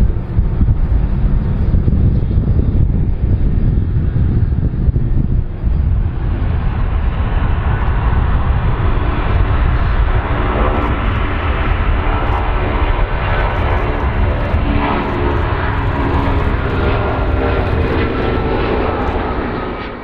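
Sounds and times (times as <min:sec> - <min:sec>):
jet engines at takeoff: 0:00.0 - 0:20.0.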